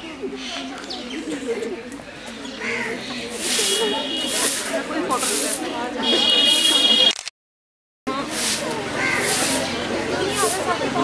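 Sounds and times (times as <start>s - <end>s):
broom sweeping earth: 3.2s - 6.9s, 8.1s - 11.0s.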